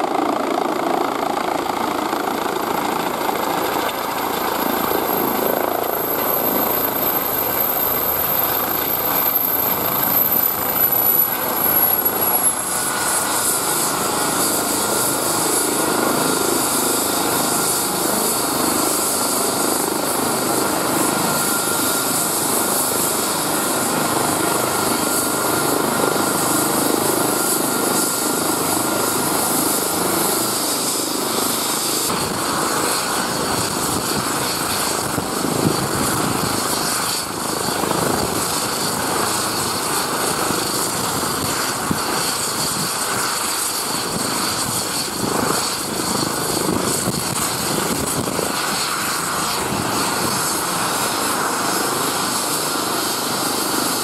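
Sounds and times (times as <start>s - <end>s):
helicopter turbine and rotor noise: 0.0s - 54.0s.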